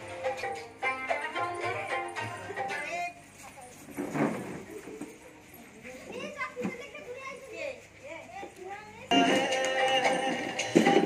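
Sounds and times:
children chattering and calling out: 4.6s - 9.2s.

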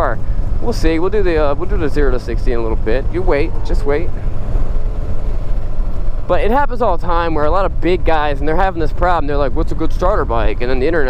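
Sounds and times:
motorcycle engine running: 0.0s - 11.0s
wind buffeting microphone: 0.0s - 11.0s.

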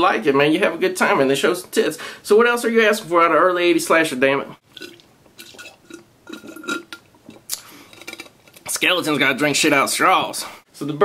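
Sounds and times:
slurping through a straw: 4.7s - 7.7s.

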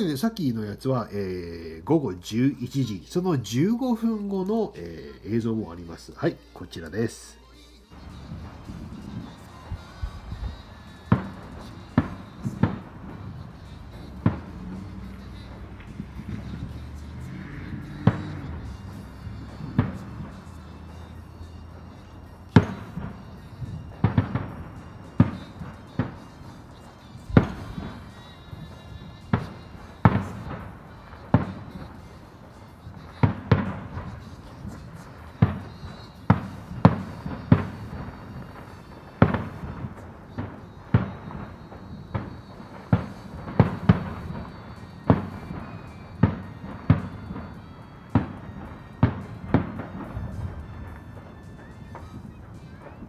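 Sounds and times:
fireworks bursting: 0.0s - 53.0s.

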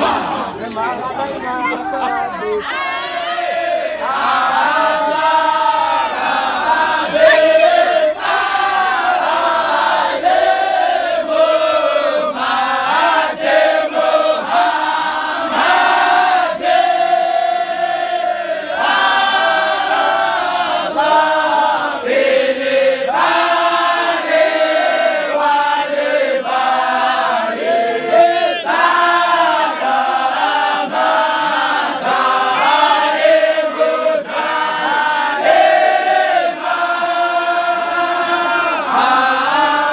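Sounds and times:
group of men chanting: 0.0s - 1.2s, 1.8s - 39.9s.

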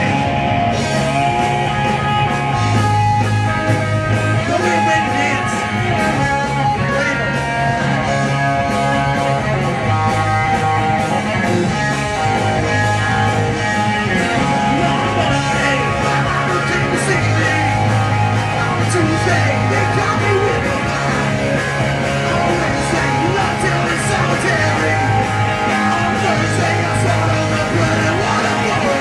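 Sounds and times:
punk rock band playing: 0.0s - 29.0s.

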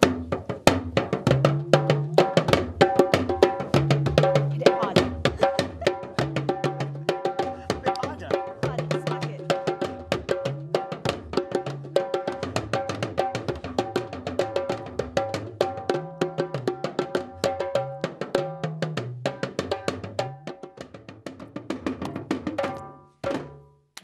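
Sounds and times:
talking drums pitch bending: 0.0s - 14.0s
djembe playing: 0.0s - 23.7s.

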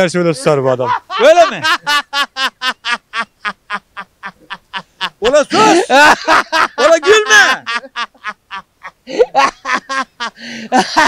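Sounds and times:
man laughing: 0.5s - 11.0s.

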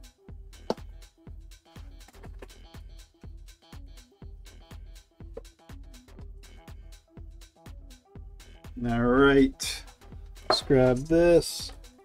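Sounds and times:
electronic music with steady beat: 0.0s - 12.0s.

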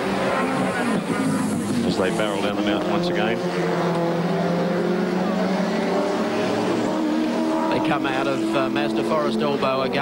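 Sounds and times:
race car engines roaring: 0.0s - 10.0s.

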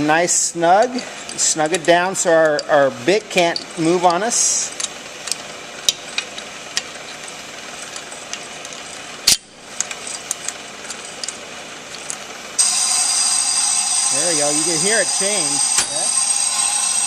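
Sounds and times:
wrench clicks: 2.4s - 12.2s
brake lathe running: 9.8s - 17.0s
high ringing: 12.6s - 17.0s.

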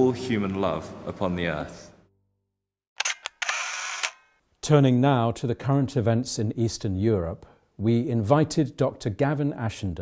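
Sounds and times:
sharp clicks: 3.0s - 4.3s.

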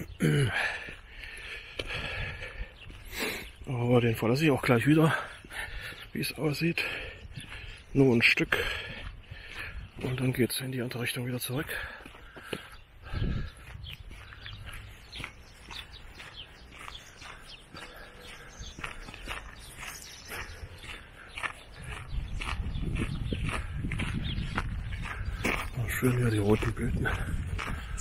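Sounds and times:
footsteps on gravel: 0.0s - 28.0s
wind rumble on microphone: 13.0s - 16.3s, 21.7s - 28.0s.

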